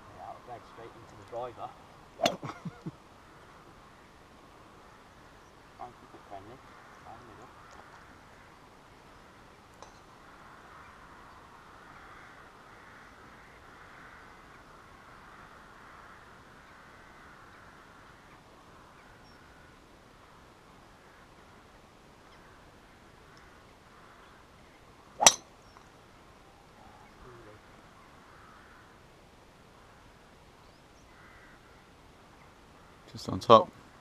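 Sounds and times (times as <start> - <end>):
golf club striking ball: 2.2 - 2.5, 25.2 - 25.5.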